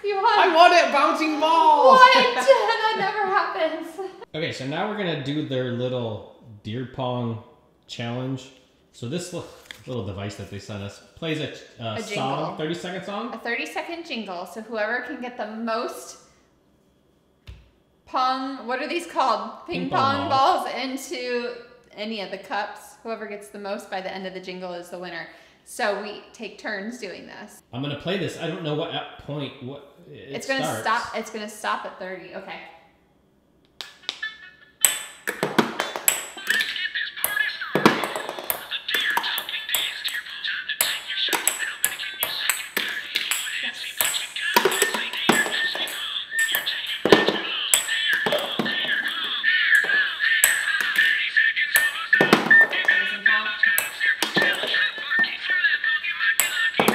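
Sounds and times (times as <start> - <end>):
ping pong balls bouncing: 34.0 - 56.9
electronic toy jingle: 36.2 - 56.9.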